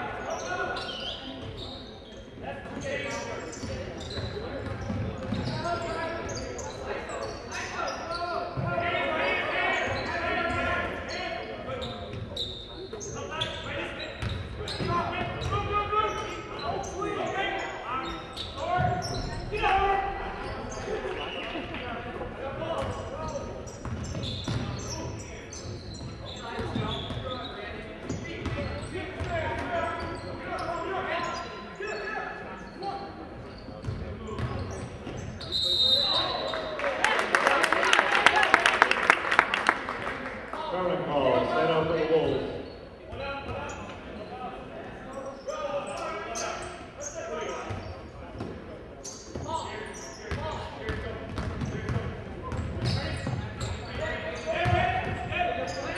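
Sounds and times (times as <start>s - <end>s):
echoing voices and shouts: 0.0s - 33.4s, 35.4s - 48.3s.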